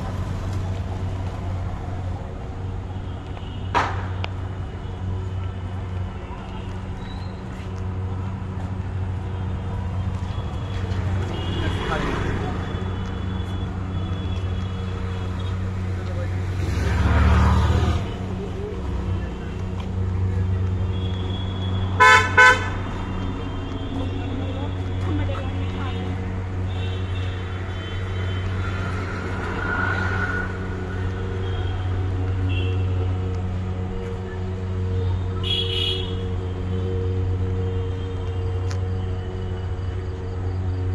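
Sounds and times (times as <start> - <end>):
steady low road hum: 0.0 - 40.9
vehicle passing: 4.6 - 35.4
car horn honking: 9.4 - 15.8, 20.5 - 29.8, 30.4 - 33.2, 35.0 - 38.7.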